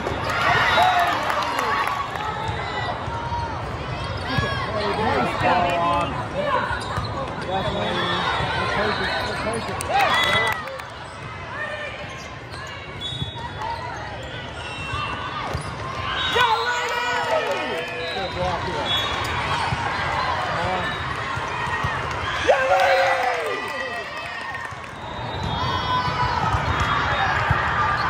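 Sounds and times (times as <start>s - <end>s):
voices of people around: 1.3s - 23.4s
players shouting calls: 4.2s - 10.8s.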